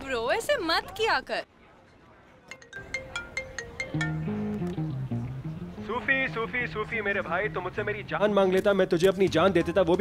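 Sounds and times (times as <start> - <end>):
mobile phone ringtone: 2.6 - 4.4.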